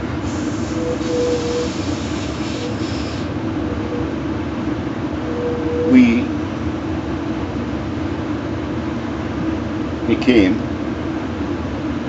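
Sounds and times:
train car rumble: 0:00.0 - 0:12.0
hiss: 0:00.2 - 0:03.4.

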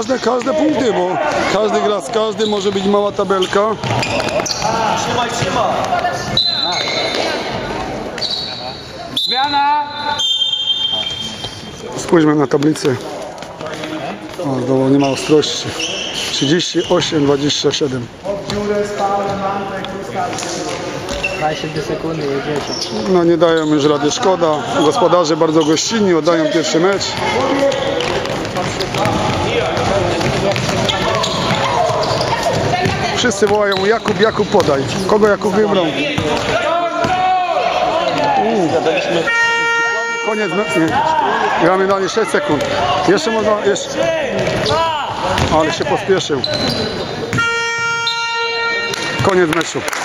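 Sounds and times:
players shouting: 0:00.0 - 0:08.0, 0:35.7 - 0:46.7
ball bouncing on court: 0:01.2 - 0:08.3, 0:18.4 - 0:21.4, 0:26.8 - 0:35.0, 0:36.1 - 0:37.2, 0:42.4 - 0:42.8, 0:44.2 - 0:45.8, 0:46.5 - 0:47.6, 0:48.8 - 0:49.7
voices calling out: 0:21.0 - 0:49.5.

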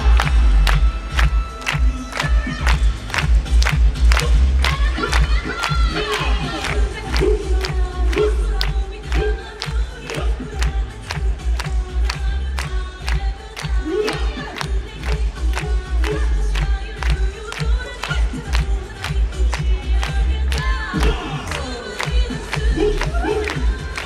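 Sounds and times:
dance music with heavy bass: 0:00.0 - 0:24.0
dancers shouting in unison: 0:22.7 - 0:24.0.

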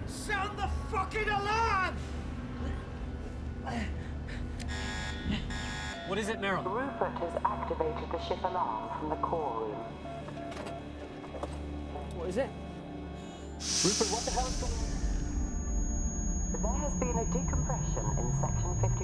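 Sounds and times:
buzzing alarm: 0:04.6 - 0:08.1, 0:13.6 - 0:19.0
loud burst of hissing: 0:13.6 - 0:15.6
steady low hum: 0:13.6 - 0:19.0.

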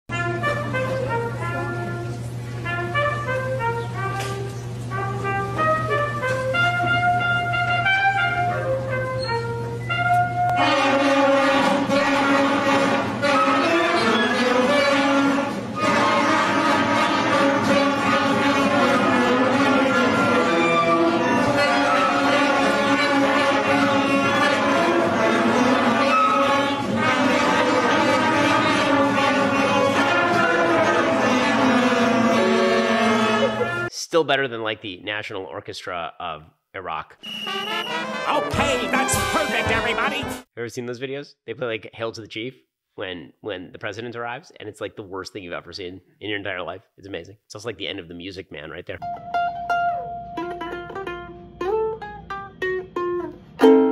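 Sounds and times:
concert band playing slow melody: 0:00.1 - 0:33.9.

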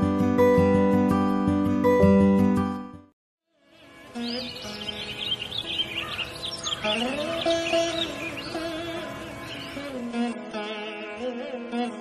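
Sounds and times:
soft song music: 0:00.0 - 0:12.0
birds chirping: 0:03.7 - 0:10.1.

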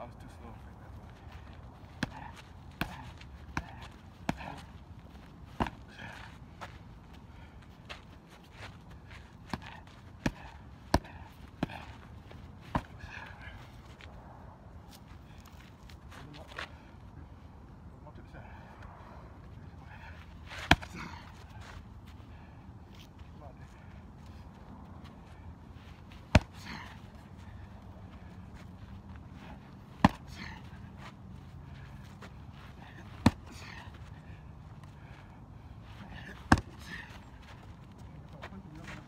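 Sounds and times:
strikes smacking kick pads: 0:02.0 - 0:04.6, 0:26.3 - 0:26.9, 0:30.0 - 0:30.5.

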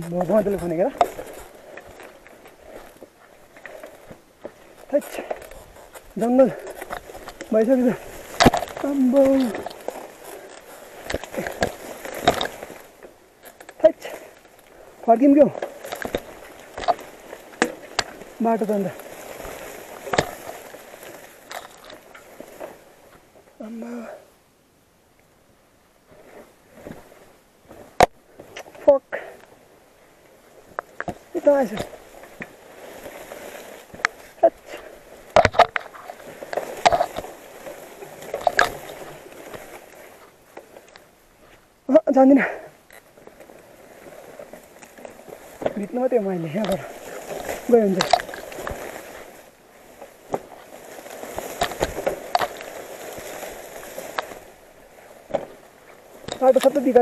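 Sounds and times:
mountain bike rattling: 0:00.0 - 0:23.3, 0:30.4 - 0:57.0
leaves and grass brushing: 0:00.0 - 0:24.3, 0:25.4 - 0:57.0.

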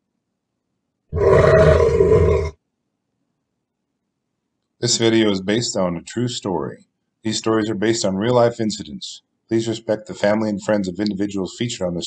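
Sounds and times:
bear roaring: 0:01.1 - 0:02.6.

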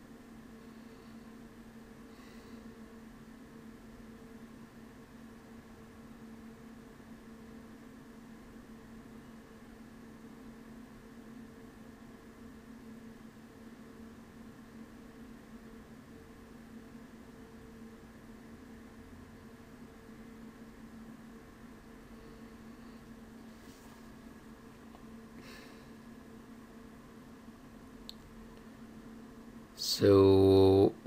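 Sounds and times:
constant low hum: 0:00.0 - 0:31.0
faint steady hiss: 0:00.0 - 0:31.0.

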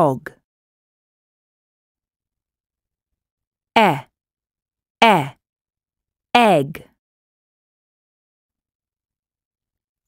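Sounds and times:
person speaking: 0:00.0 - 0:00.3, 0:03.8 - 0:04.1, 0:05.0 - 0:05.4, 0:06.4 - 0:06.8.

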